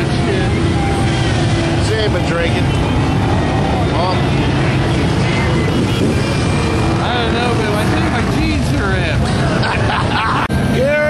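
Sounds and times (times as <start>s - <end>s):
crowd shouting and chattering: 0.0s - 11.0s
engines running: 0.0s - 11.0s.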